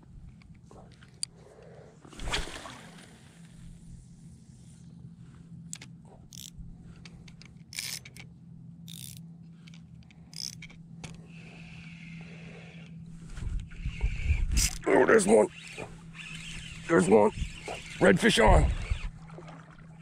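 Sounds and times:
faint low hum: 0.0 - 20.0
fishing reel whirring: 5.7 - 6.6, 7.4 - 8.2, 8.8 - 19.3
rod and reel clicks and scrapes: 5.7 - 8.3, 8.9 - 19.2.

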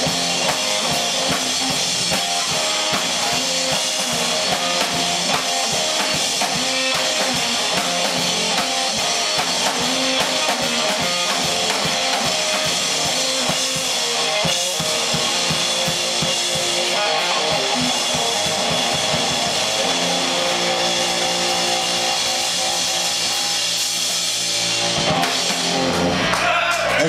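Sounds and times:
drum kit playing: 0.0 - 27.0
electric guitar: 0.0 - 27.0.

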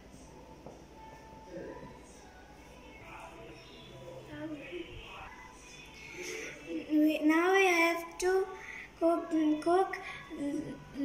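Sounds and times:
child singing: 6.1 - 11.0.

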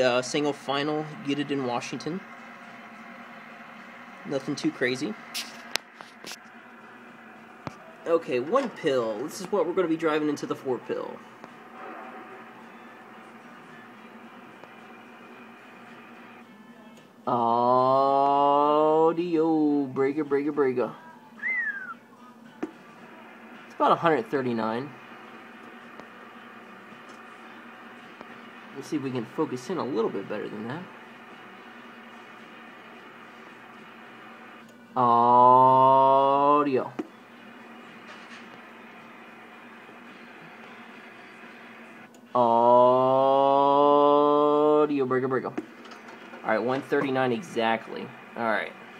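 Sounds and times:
weak low hum: 0.0 - 48.9.

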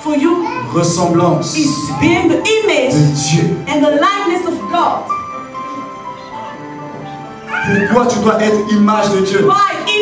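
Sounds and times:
man's amplified voice: 0.0 - 2.3, 2.9 - 3.7, 7.5 - 10.0.

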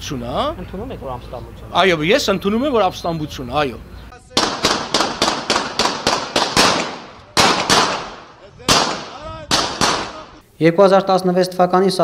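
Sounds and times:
rapid gunshots echoing: 4.4 - 10.3.

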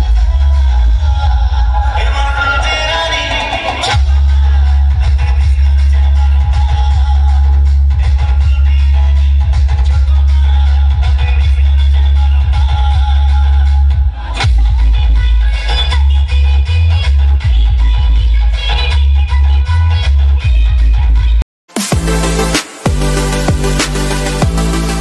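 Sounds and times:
loud dance music with heavy bass: 0.0 - 25.0.

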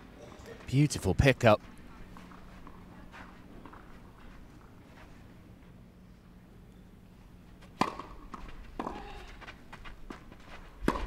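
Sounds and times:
low court ambience: 0.0 - 11.0
tennis racquet striking ball: 7.8 - 9.1.

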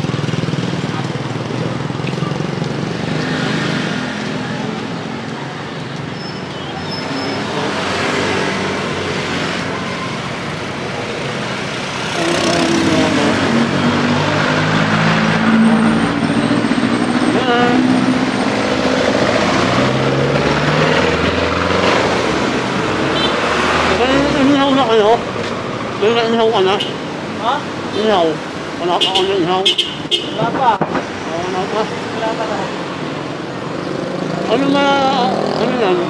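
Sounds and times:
street traffic: 0.0 - 36.0.

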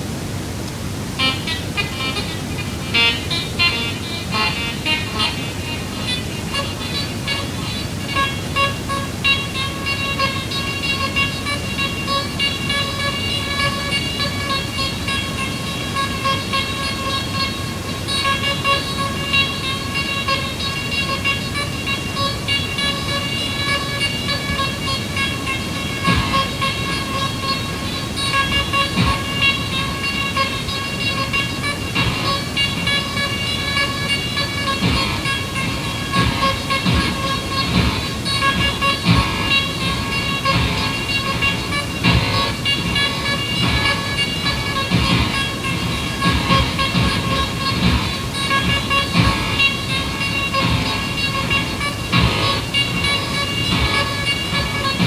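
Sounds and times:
pitched electronic drone: 0.8 - 55.0
low thumps: 1.2 - 55.0.

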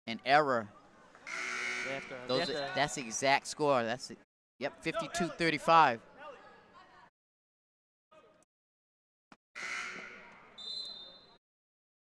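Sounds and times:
high-pitched whistle blast: 10.6 - 11.4.

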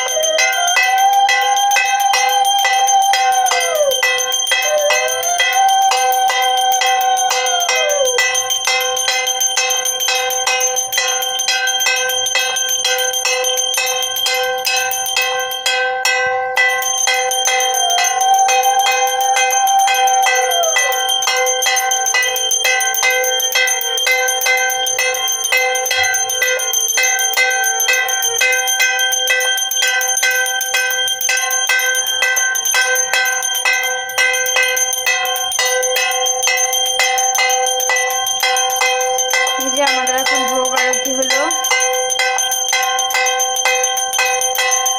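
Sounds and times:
bell rung rapidly: 0.0 - 44.9.

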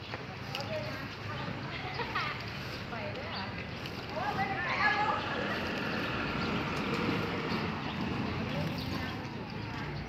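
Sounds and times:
distant traffic noise: 0.0 - 10.0.

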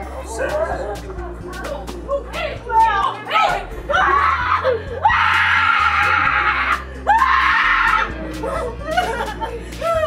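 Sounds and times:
background music: 0.0 - 10.0
woman screaming in fright: 3.9 - 8.1.

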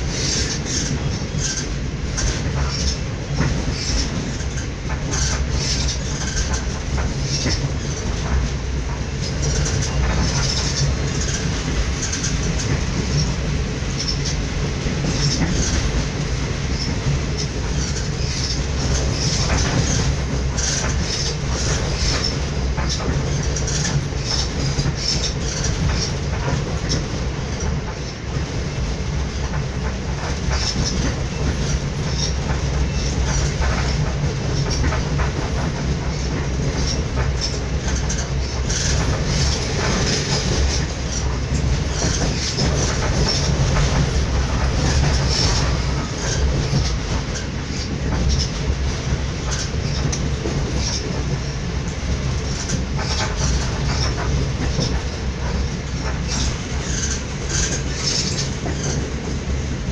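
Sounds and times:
train wheels rumbling: 0.0 - 59.9.

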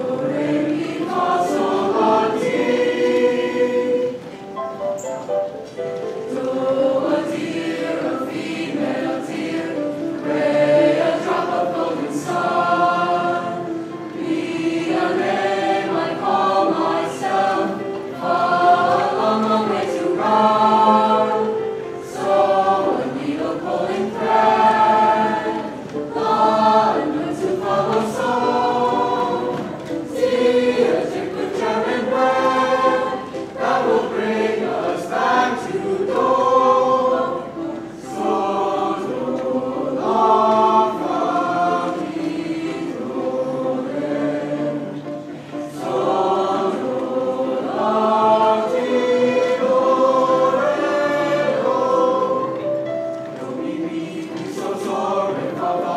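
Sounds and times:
school chorus singing: 0.0 - 55.9.

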